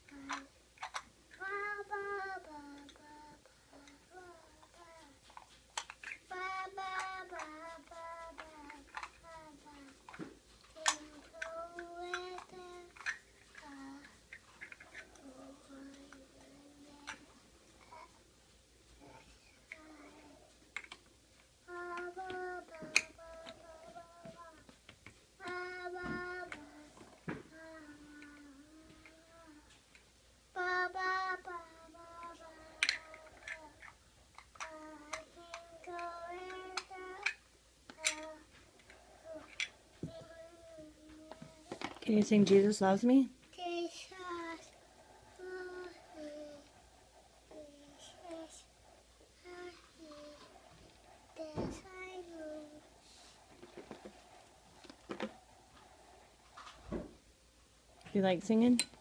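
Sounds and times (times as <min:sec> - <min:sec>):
young child singing softly: 0:00.0 - 0:18.3, 0:18.9 - 0:21.0, 0:21.6 - 0:24.8, 0:25.4 - 0:29.9, 0:30.5 - 0:41.9, 0:43.5 - 0:53.5.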